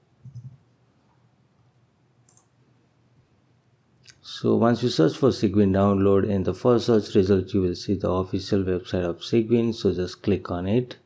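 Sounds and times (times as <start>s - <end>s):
computer keyboard clicks: 2.2s - 2.5s.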